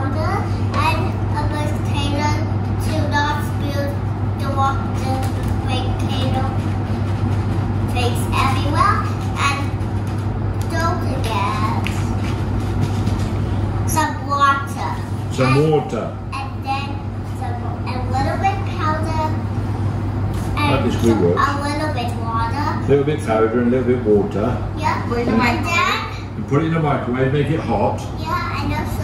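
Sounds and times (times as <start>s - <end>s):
young child talking: 0.0s - 6.8s, 7.9s - 9.8s, 10.6s - 12.1s, 13.9s - 19.5s, 20.4s - 22.9s, 24.8s - 26.4s, 28.0s - 29.0s
steady low hum: 0.0s - 29.0s.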